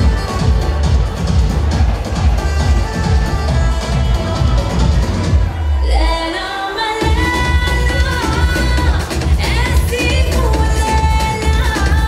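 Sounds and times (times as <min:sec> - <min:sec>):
song over loudspeakers: 0:00.0 - 0:12.0.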